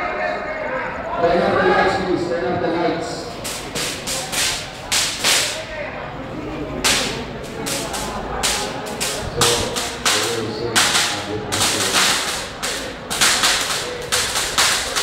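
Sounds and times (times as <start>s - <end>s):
crowd murmuring: 0.0s - 15.0s
fireworks bangs and cracks: 3.3s - 5.6s, 6.8s - 15.0s.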